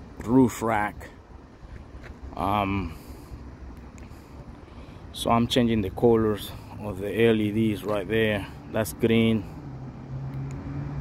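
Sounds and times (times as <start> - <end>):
low rumble and hiss: 0.0 - 10.1.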